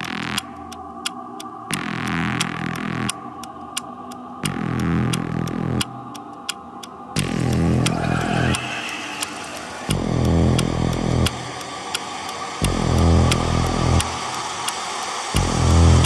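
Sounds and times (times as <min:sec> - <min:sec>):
distorted pulsing synth bass: 0:00.0 - 0:00.7, 0:01.7 - 0:03.4, 0:04.4 - 0:06.2, 0:07.2 - 0:11.8, 0:12.6 - 0:14.7, 0:15.4 - 0:16.0
ticking percussion: 0:00.0 - 0:16.0.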